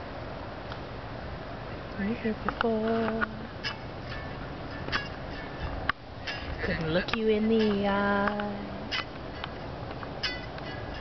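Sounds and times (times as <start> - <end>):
steady outdoor hiss: 0.0 - 11.0
faint music through small speaker: 1.8 - 11.0.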